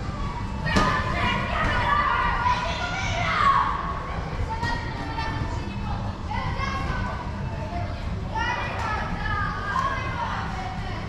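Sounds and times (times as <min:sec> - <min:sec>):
children shouting: 0:00.2 - 0:04.8.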